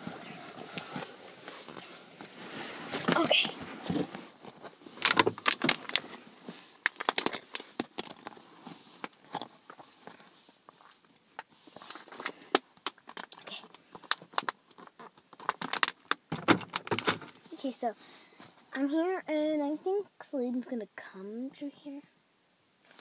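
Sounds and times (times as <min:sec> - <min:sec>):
plastic water bottle crackling: 0:02.9 - 0:06.2, 0:06.8 - 0:08.4, 0:11.8 - 0:17.4.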